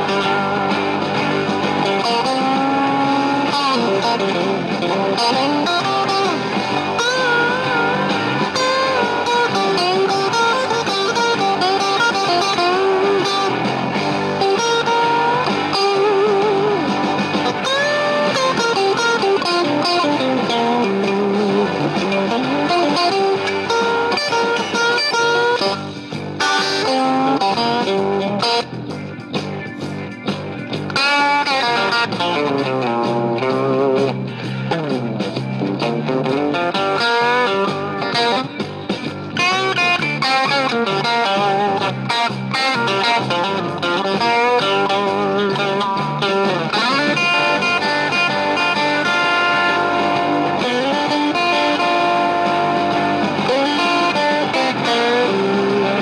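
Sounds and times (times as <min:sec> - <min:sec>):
electric guitar single-note lines: 0:00.0 - 0:56.0.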